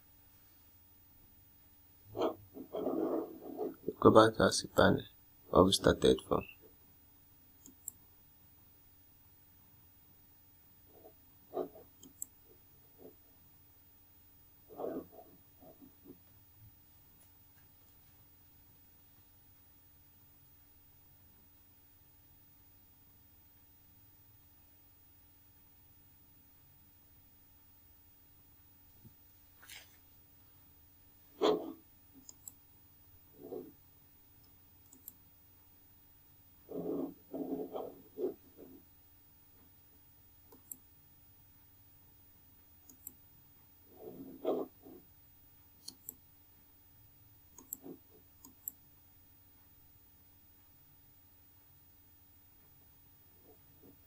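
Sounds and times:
faint steady hum: 0:00.0 - 0:54.0
computer mouse clicks: 0:07.6 - 0:08.0, 0:11.0 - 0:12.4, 0:31.4 - 0:32.6, 0:34.4 - 0:35.2, 0:40.5 - 0:40.9, 0:42.8 - 0:43.2, 0:45.8 - 0:46.3, 0:47.5 - 0:48.8.

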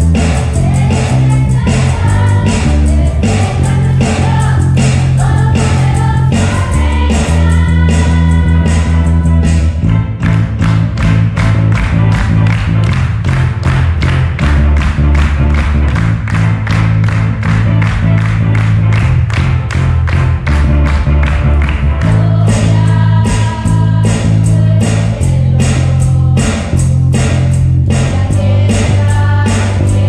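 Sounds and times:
voices singing: 0:00.0 - 0:09.7, 0:22.0 - 0:30.0
bass guitar notes: 0:00.0 - 0:30.0
drum kit beat: 0:00.0 - 0:30.0.

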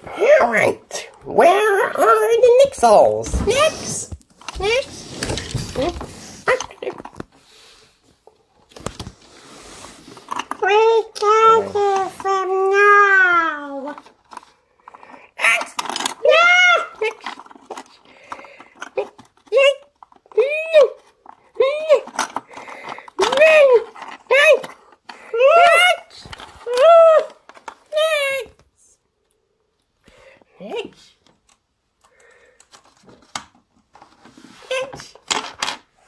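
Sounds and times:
child making squeaky character noises: 0:03.4 - 0:04.0, 0:10.6 - 0:14.0.

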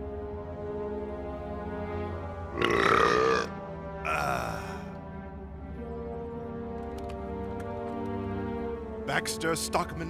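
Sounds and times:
background music: 0:00.0 - 0:10.0
man belching: 0:02.6 - 0:03.5, 0:04.1 - 0:04.8.

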